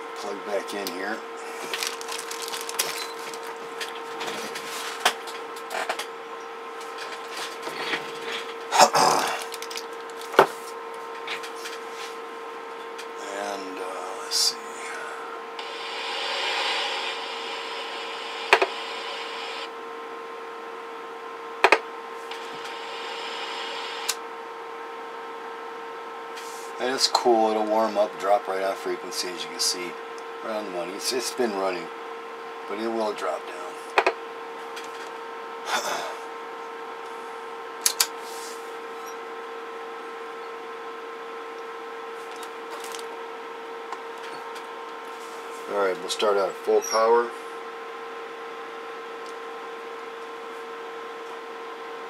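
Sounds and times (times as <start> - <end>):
steady electronic tone: 14.0 - 19.8, 22.3 - 24.2
hiss: 14.8 - 19.7, 22.4 - 24.2.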